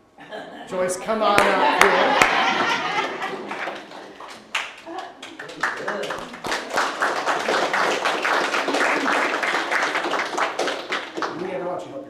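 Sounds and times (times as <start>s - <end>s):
crowd applauding: 1.2s - 11.6s.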